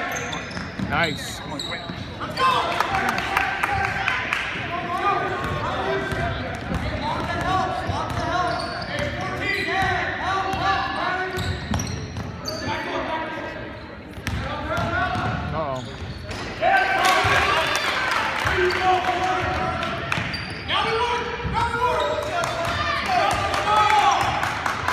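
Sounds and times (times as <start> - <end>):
shoe squeaks on hardwood: 0.0 - 2.6, 20.2 - 20.8.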